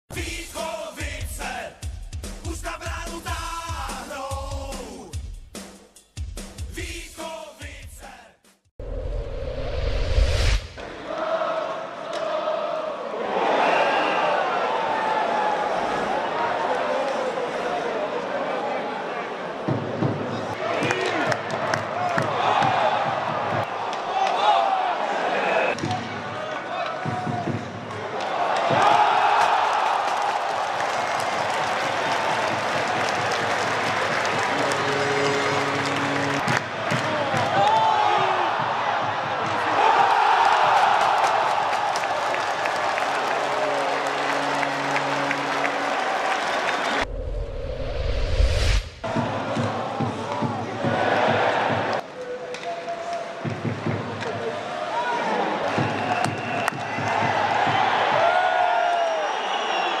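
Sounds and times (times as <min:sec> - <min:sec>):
deep rumble: 0:08.8 - 0:10.8, 0:47.0 - 0:49.0
whoosh rising in pitch: 0:08.8 - 0:10.9, 0:47.0 - 0:49.0
crowd cheering: 0:10.8 - 0:47.1, 0:49.0 - 1:00.0
horn-like tone: 0:34.4 - 0:36.5, 0:43.7 - 0:46.2.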